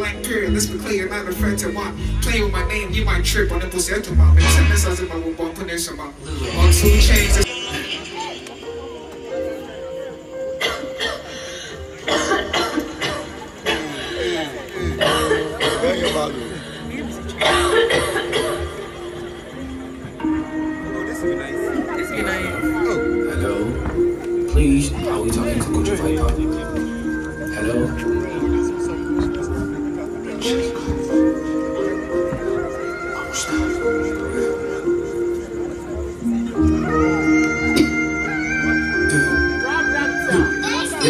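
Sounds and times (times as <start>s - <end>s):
man rapping into microphone: 0.0s - 7.4s
live band music: 0.0s - 10.0s, 14.6s - 41.0s.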